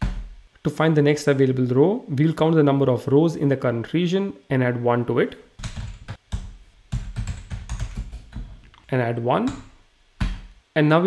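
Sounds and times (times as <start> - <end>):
computer keyboard typing: 5.6 - 8.6.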